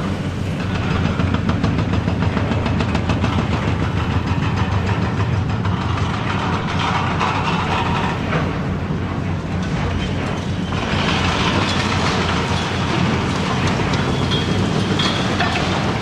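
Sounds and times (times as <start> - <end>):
diesel engine drone: 0.0 - 16.0
concrete crushing: 10.7 - 16.0
debris falling: 10.8 - 16.0.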